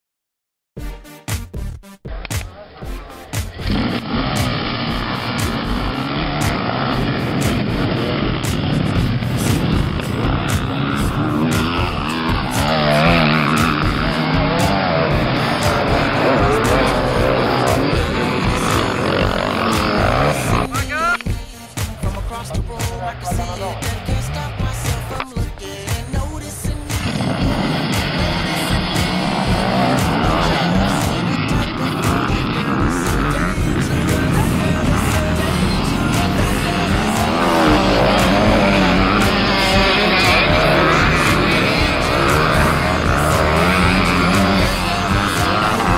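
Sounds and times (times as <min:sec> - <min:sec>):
song with steady beat: 0:00.8 - 0:45.9
motocross bike engines revving: 0:02.1 - 0:45.9.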